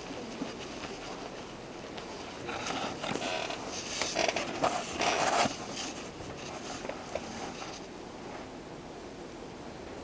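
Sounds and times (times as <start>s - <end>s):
creaking and rubbing: 0.4s - 7.9s.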